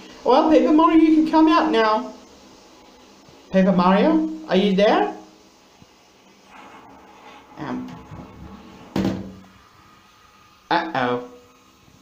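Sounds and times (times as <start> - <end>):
plastic toilet lid knocking: 8.9 - 9.4.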